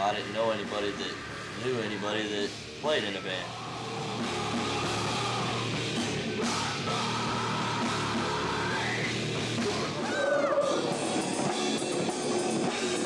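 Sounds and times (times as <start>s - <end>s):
distorted electric guitar: 0.0s - 13.0s
drum kit: 0.0s - 13.0s.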